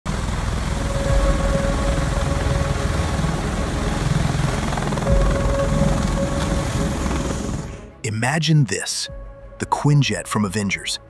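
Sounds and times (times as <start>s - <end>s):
rotor and turbine noise: 0.1s - 8.0s
turbine whine: 0.1s - 8.0s.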